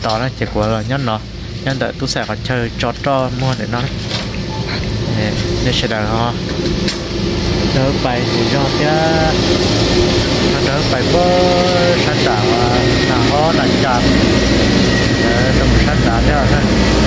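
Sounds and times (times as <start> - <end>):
man talking: 0.0 - 4.0, 5.0 - 6.5, 7.6 - 9.6, 10.4 - 17.0
low mechanical rumble: 0.0 - 17.0.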